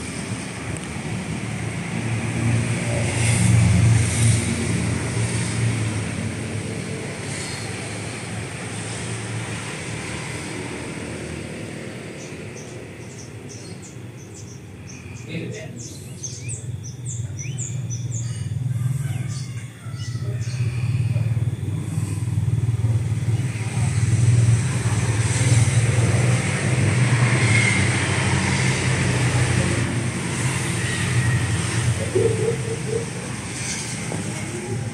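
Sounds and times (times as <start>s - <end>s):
bird chirps: 12.2s - 18.5s
motor vehicle engine running: 20.4s - 34.9s.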